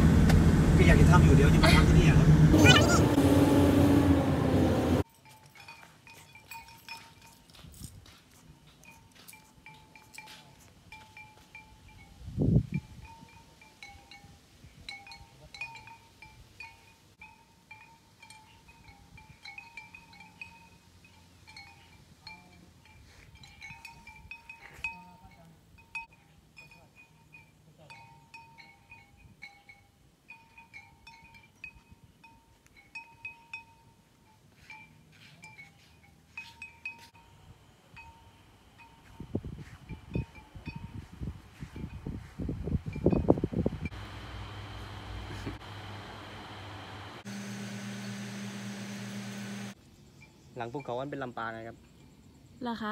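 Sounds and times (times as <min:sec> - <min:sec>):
metal wind bells tinkling: 0:05.0 - 0:44.8.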